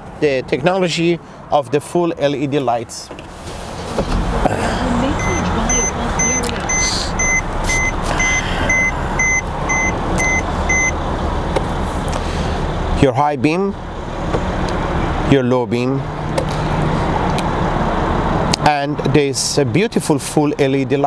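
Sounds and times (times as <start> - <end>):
car engine starting and idling: 2.1 - 20.8
car warning chime beeping: 5.0 - 11.0.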